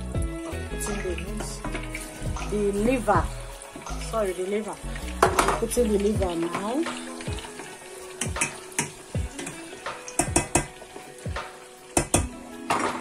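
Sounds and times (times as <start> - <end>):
liver sizzling in hot oil: 0.0 - 13.0
oil popping and crackling: 0.0 - 13.0.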